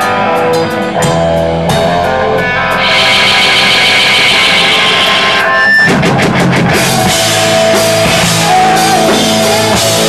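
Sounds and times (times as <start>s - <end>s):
rock band playing live: 0.0s - 10.0s
guitar chord ringing: 2.0s - 5.8s
drum hits: 2.7s - 9.4s.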